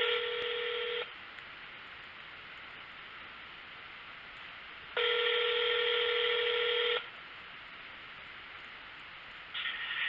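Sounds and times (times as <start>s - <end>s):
telephone ringback tone: 0.0s - 1.1s, 5.0s - 7.1s
faint phone line hiss: 0.0s - 1.2s, 4.9s - 7.1s, 9.5s - 10.0s.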